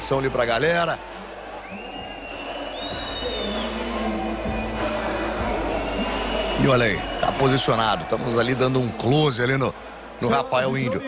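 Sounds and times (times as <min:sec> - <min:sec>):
arena crowd murmur: 0:00.0 - 0:11.0
shrill whistles: 0:01.6 - 0:07.8.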